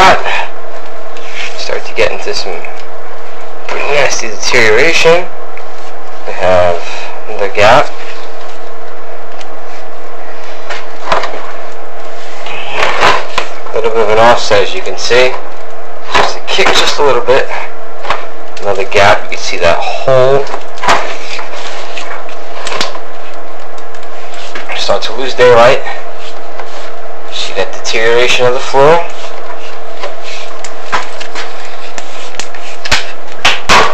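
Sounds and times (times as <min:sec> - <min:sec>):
faint constant hum: 0:00.0 - 0:33.9
loud steady hiss: 0:06.2 - 0:33.9.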